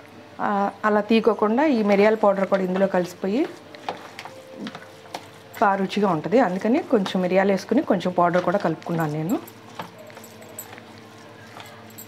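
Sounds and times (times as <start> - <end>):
woman's voice: 0.4 - 3.6, 5.6 - 9.5
spatula stirring soft rice: 2.3 - 12.0.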